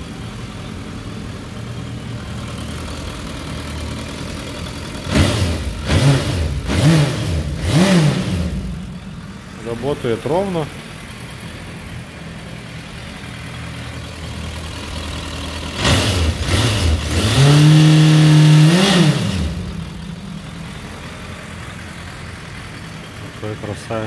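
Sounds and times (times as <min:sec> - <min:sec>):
motorcycle engine idling and revving: 0:00.0 - 0:24.0.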